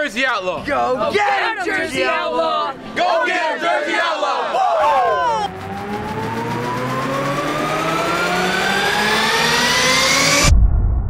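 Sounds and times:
engine-like revving whine: 5.5 - 10.6.

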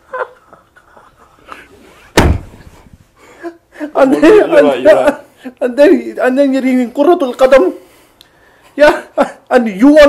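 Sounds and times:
loud slam: 2.1 - 2.8.

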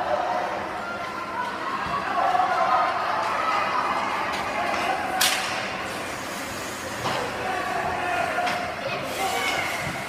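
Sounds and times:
ice arena background noise: 0.0 - 10.0.

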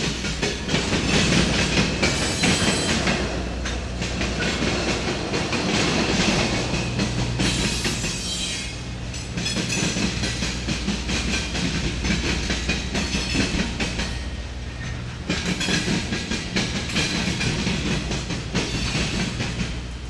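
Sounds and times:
train wheels clattering on track: 0.0 - 20.0.

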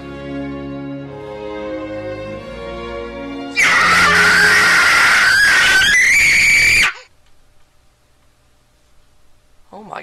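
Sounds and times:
child screaming in tantrum: 3.6 - 7.1.

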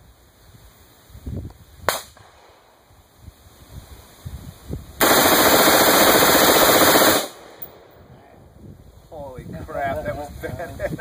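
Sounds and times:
automatic rifle burst: 5.0 - 7.4.

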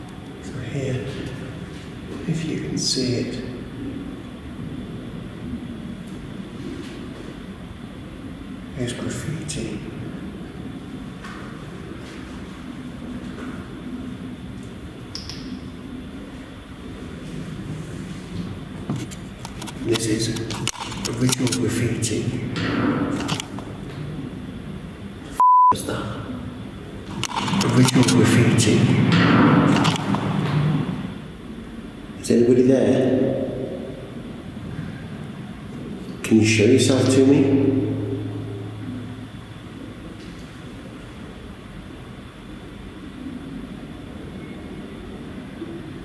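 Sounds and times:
censor bleep: 25.4 - 25.8.

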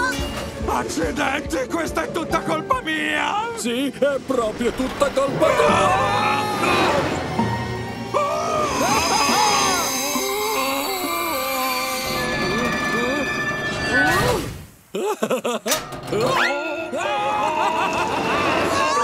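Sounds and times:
cartoon characters' wordless cries: 5.3 - 7.2, 8.1 - 14.4, 16.2 - 19.0.

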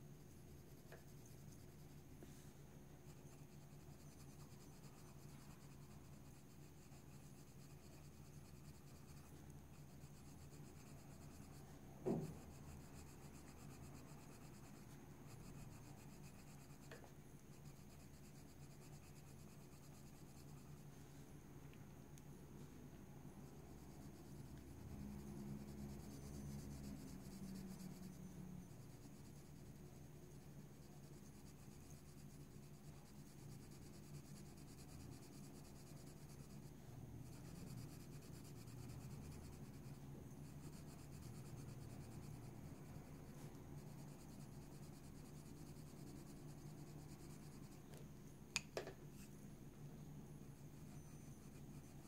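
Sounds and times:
low steady hum: 0.0 - 52.0
pencil scratching on paper: 0.2 - 21.1, 23.4 - 48.0, 50.3 - 52.0.

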